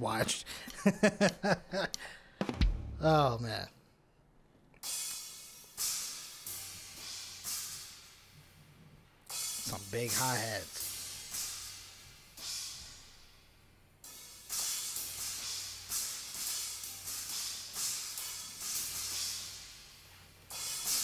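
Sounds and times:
drum solo with cymbals and hi-hats: 0:02.4 - 0:03.3, 0:09.3 - 0:13.1, 0:20.5 - 0:21.0
cymbal crash: 0:04.8 - 0:08.3, 0:09.3 - 0:19.9, 0:20.5 - 0:21.0.

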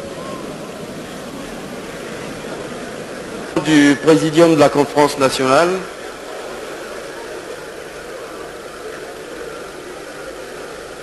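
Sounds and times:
recording hiss: 0:00.0 - 0:11.0.

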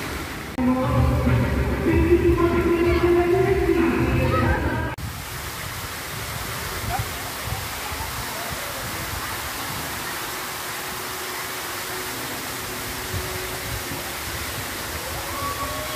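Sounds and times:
running water rushing: 0:00.0 - 0:15.9.

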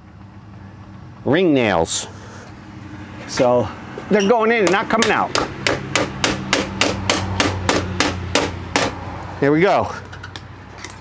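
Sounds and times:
hammer striking nail: 0:04.6 - 0:09.0.

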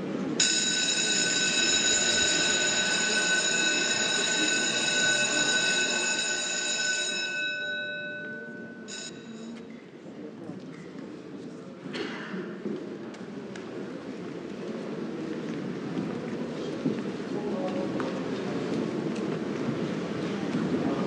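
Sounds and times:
electric school bell ringing: 0:00.4 - 0:09.6.

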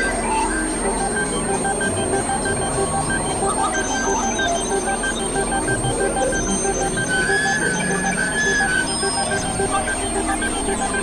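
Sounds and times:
synthesizer beeps: 0:00.0 - 0:11.0
wavering high synth tone: 0:00.0 - 0:11.0.

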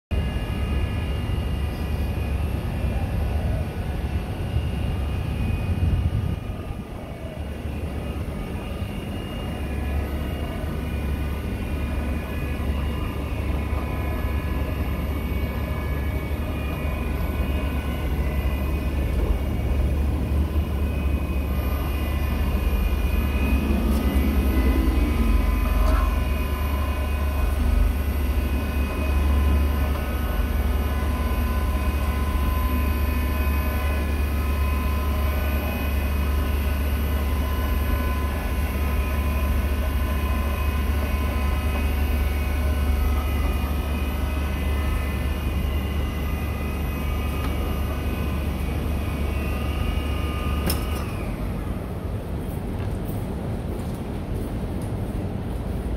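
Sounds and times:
electric motor humming and whining: 0:03.6 - 0:51.8.

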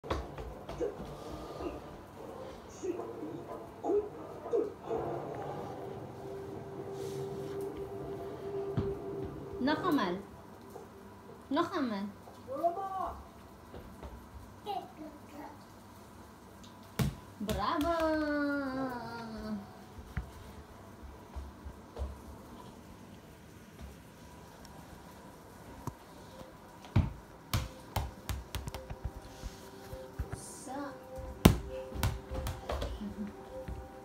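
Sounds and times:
ball bouncing on hard floor: 0:00.0 - 0:01.1, 0:17.0 - 0:18.2, 0:26.8 - 0:29.2, 0:31.2 - 0:33.0.

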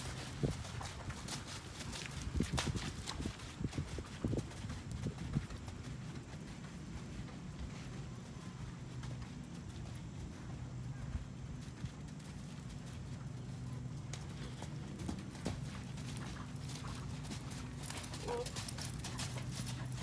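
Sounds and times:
hoofbeats on sand: 0:00.0 - 0:20.0.

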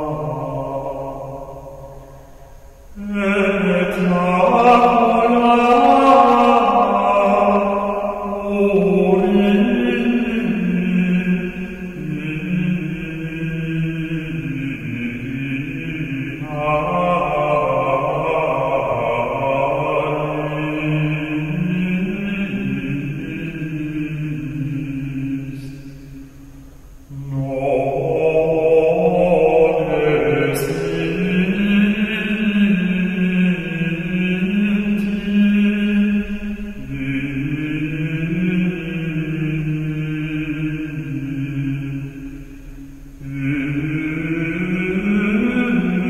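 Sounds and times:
slow sung devotional chant: 0:00.0 - 0:46.0.

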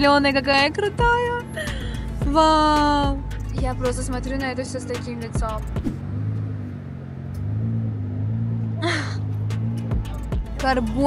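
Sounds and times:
car interior drone: 0:00.0 - 0:11.0.

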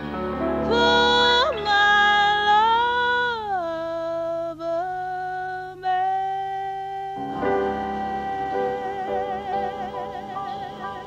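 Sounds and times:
woman singing long jazz note: 0:00.6 - 0:11.0.

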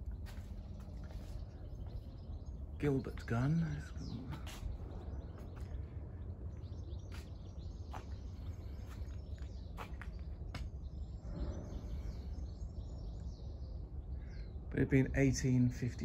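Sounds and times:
faint bird chirps: 0:00.0 - 0:16.0
wind rumble on microphone: 0:00.0 - 0:16.0.

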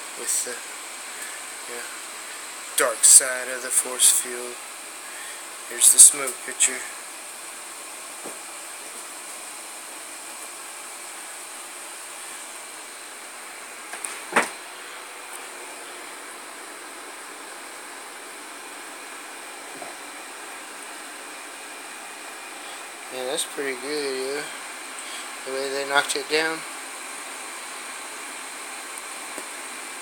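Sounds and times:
steady hiss: 0:00.0 - 0:30.0.

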